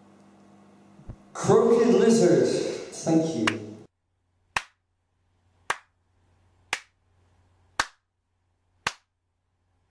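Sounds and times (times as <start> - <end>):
single hand claps: 4.6 - 4.8, 5.7 - 5.9, 6.7 - 7.0, 7.8 - 8.0, 8.8 - 9.1.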